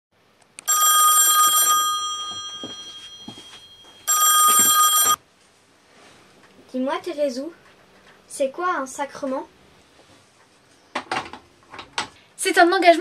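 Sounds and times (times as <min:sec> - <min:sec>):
telephone bell ringing: 0:00.7 - 0:05.2.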